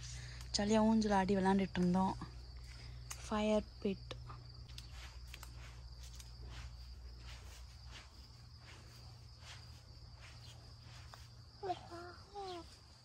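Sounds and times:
insect trill: 0:00.0 - 0:13.0.

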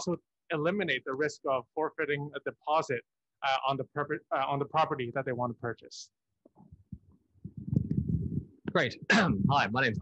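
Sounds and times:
microphone handling rumble: 0:06.7 - 0:08.7.

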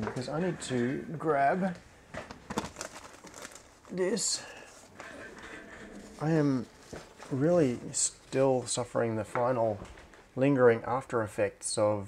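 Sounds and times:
rustling and handling noise: 0:01.6 - 0:10.4.

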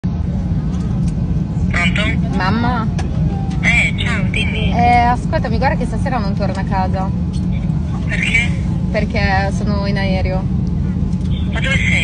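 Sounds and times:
airliner cabin rumble: 0:00.0 - 0:12.0
woman's voice: 0:01.7 - 0:03.0, 0:03.6 - 0:07.2, 0:08.1 - 0:10.5, 0:11.4 - 0:12.0.

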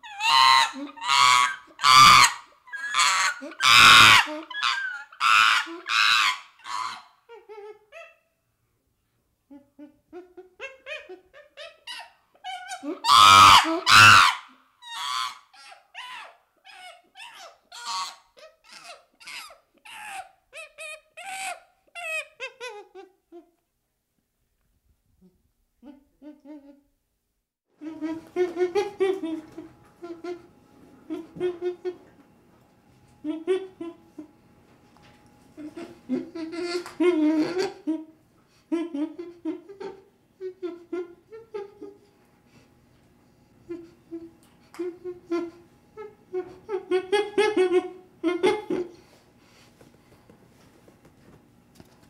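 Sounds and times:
chimpanzee calling: 0:00.0 - 0:08.2, 0:09.5 - 0:23.4, 0:27.8 - 0:30.5, 0:31.1 - 0:32.1, 0:33.2 - 0:34.3, 0:35.6 - 0:38.1, 0:43.7 - 0:49.1.

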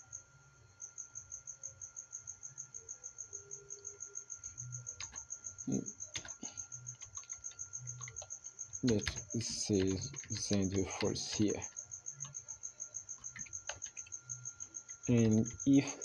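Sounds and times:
keyboard keystrokes: 0:05.0 - 0:05.3, 0:06.1 - 0:12.4, 0:13.2 - 0:14.2, 0:14.9 - 0:15.7.

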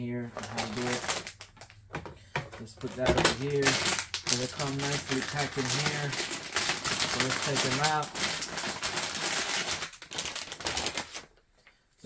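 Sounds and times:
plastic bag crinkling: 0:00.2 - 0:01.8, 0:02.6 - 0:11.8.

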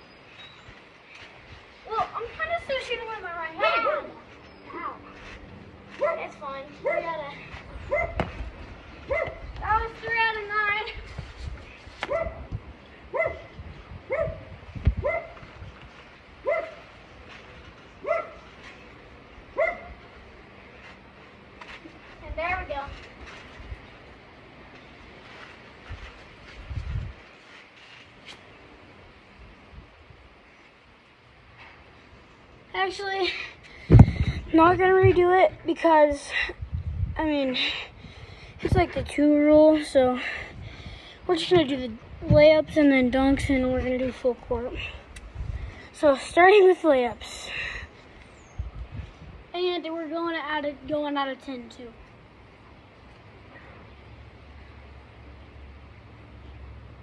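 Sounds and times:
dog barking: 0:06.8 - 0:07.1, 0:07.9 - 0:08.2, 0:09.1 - 0:09.4, 0:12.1 - 0:12.4, 0:13.2 - 0:13.5, 0:14.1 - 0:14.4, 0:15.0 - 0:15.4, 0:16.5 - 0:16.8, 0:18.0 - 0:18.4, 0:19.6 - 0:20.0
low thumps: 0:33.8 - 0:35.3.

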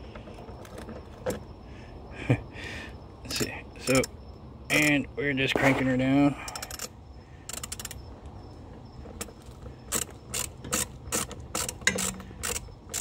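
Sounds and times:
ratchet wrench clicking: 0:06.4 - 0:06.9, 0:07.5 - 0:08.0, 0:09.2 - 0:13.0.

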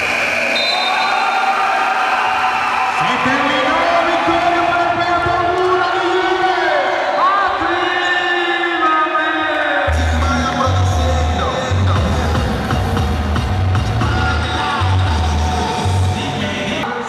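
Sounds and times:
crowd noise: 0:00.0 - 0:17.0
music with heavy bass beat: 0:09.9 - 0:16.8.

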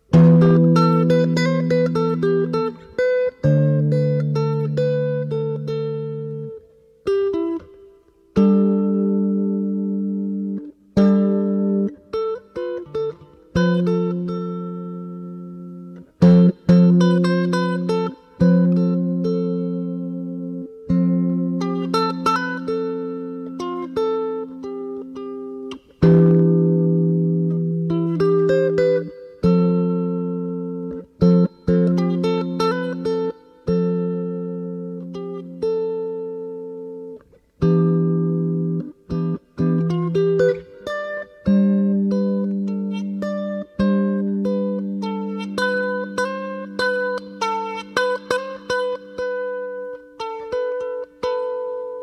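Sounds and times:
solo guitar plucked: 0:00.0 - 0:52.0.

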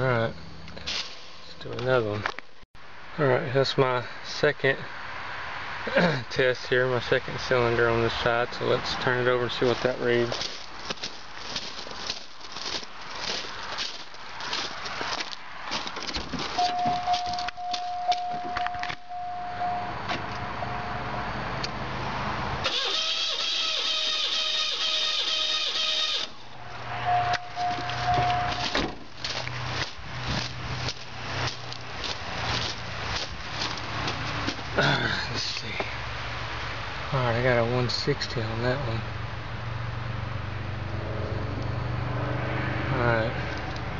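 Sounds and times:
footsteps on gravel: 0:09.4 - 0:19.0, 0:27.4 - 0:35.9
handling noise: 0:09.6 - 0:19.2, 0:27.3 - 0:34.8
high warning tone: 0:16.6 - 0:21.4, 0:22.7 - 0:28.8
starter motor cranking engine: 0:22.6 - 0:26.4.

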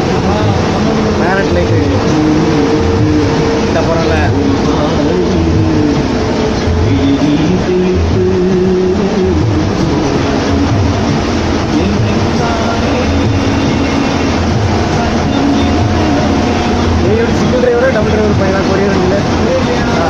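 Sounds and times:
person talking: 0:00.0 - 0:06.0, 0:15.0 - 0:20.0
bus engine and road noise: 0:00.0 - 0:20.0.

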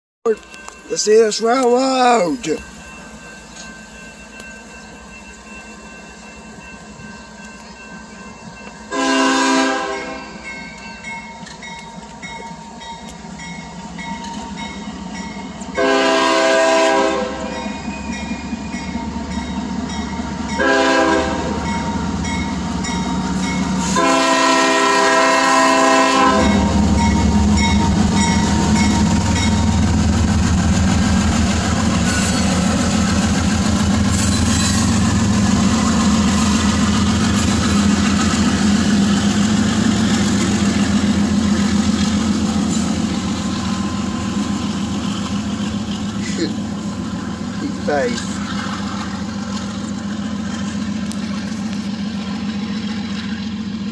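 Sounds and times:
rolling clatter of freight cars: 0:00.2 - 0:53.9
crossing bell ringing: 0:00.3 - 0:30.2, 0:31.8 - 0:33.1, 0:34.0 - 0:39.7
locomotive engine rumble: 0:00.3 - 0:53.9
locomotive air horn blasts: 0:08.9 - 0:10.4, 0:15.8 - 0:17.5, 0:20.6 - 0:21.7, 0:23.8 - 0:26.8.

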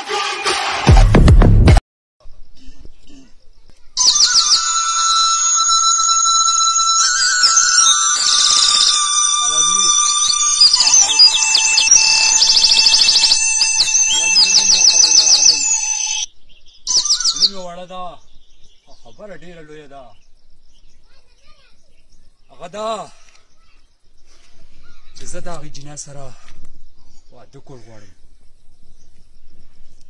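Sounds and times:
birds chirping and trilling: 0:02.2 - 0:30.0
steady whistled tones: 0:06.1 - 0:17.8.

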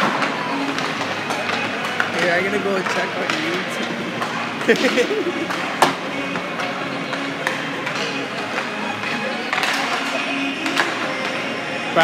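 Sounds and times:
hockey sticks and pucks clacking: 0:00.0 - 0:12.0.

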